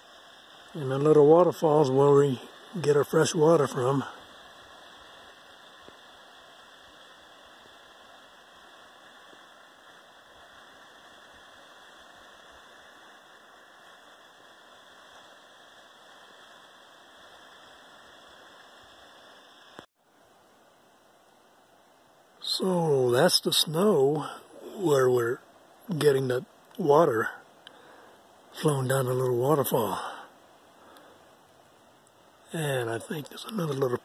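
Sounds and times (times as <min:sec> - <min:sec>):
small waterfall rushing: 0:00.0 - 0:34.0.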